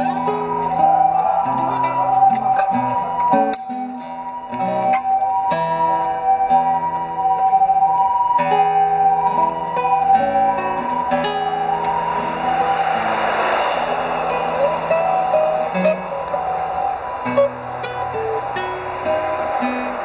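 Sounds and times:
classical guitar fingerstyle: 0:00.0 - 0:12.3, 0:14.3 - 0:20.0
rushing noise: 0:00.0 - 0:20.0.

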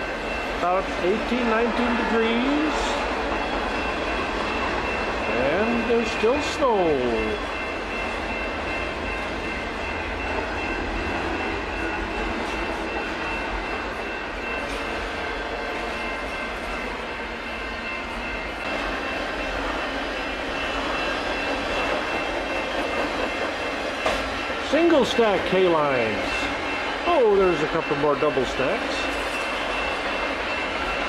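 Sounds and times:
train wheels rumbling on rails: 0:00.0 - 0:31.0.

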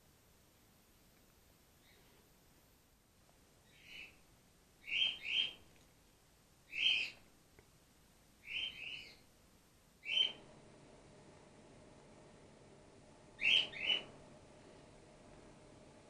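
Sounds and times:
short high-pitched animal calls: 0:13.4 - 0:14.1.

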